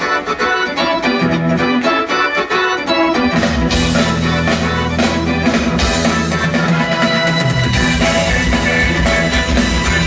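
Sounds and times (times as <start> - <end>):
live rock band playing: 0.0 - 10.0
organ-toned keyboard: 0.0 - 10.0.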